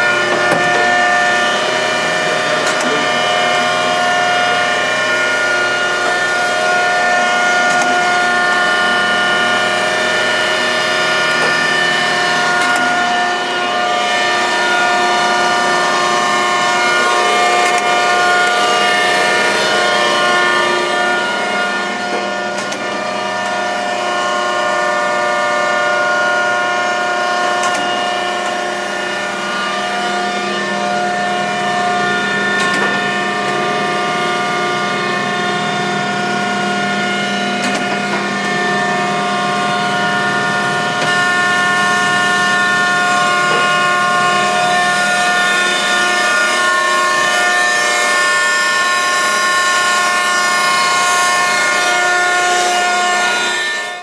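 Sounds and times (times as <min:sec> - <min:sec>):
surface grinder motor hum: 0:00.0 - 0:54.0.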